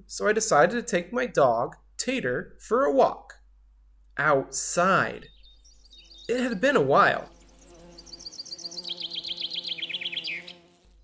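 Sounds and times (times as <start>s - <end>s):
songbird trilling: 5.2s - 6.4s, 7.1s - 10.8s.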